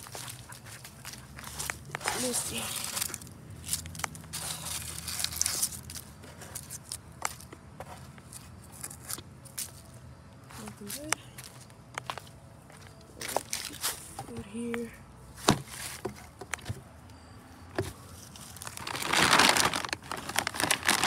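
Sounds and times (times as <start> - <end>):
footsteps crunching dry leaves: 0.0 - 14.1, 18.1 - 21.0.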